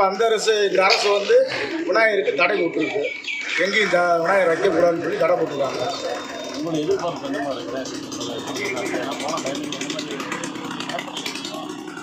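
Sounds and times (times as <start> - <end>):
man speaking: 0.0 - 11.8
low hum: 4.4 - 12.0.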